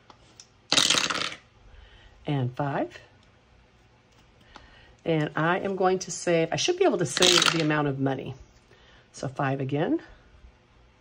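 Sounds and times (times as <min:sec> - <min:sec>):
dice rattling in wooden tray: 0:07.1 - 0:07.7.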